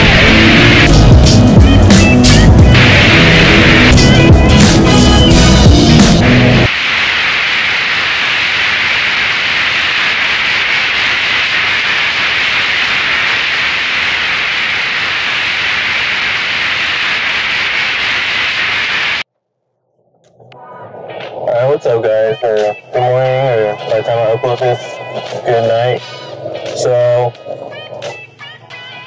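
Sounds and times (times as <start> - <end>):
music: 0.0 - 6.7, 20.4 - 29.0
tv static hiss: 0.0 - 19.3, 20.8 - 29.0.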